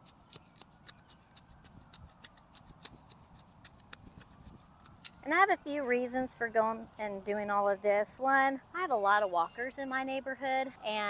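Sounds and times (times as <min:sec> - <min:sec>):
soil being dug by hand: 0:00.0 - 0:05.4.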